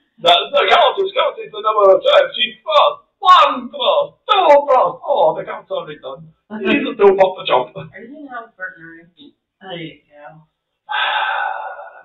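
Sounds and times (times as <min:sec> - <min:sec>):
person gasping loudly: 0:10.9 - 0:12.0.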